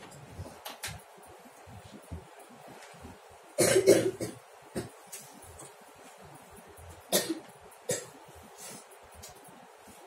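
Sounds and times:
person coughing: 3.6 - 4.9, 7.1 - 8.1.

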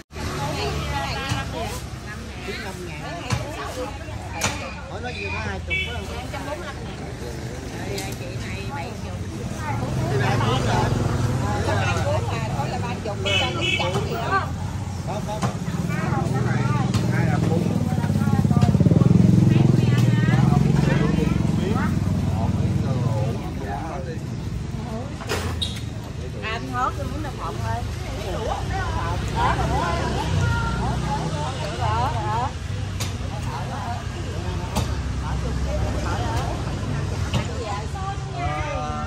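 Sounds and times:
motorbike engines passing: 0.0 - 39.0
people talking: 0.0 - 39.0.

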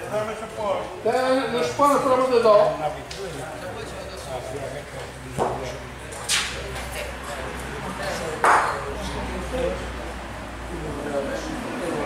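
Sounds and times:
spectators talking: 0.0 - 12.0.

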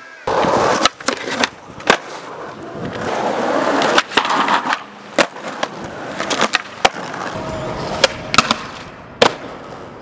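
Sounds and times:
skateboard wheels rolling on pavement: 0.2 - 10.0
skateboard clacks: 0.3 - 10.0.

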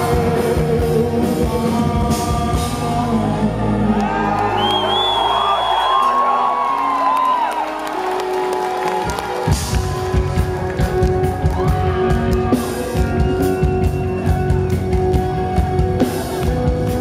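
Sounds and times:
live rock band playing: 0.0 - 4.4, 7.5 - 17.0
audience whooping: 3.5 - 16.6.

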